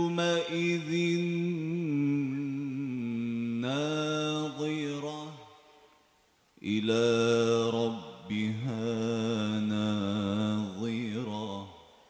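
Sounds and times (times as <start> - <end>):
man reciting melodically: 0.0 - 5.8, 6.6 - 12.0.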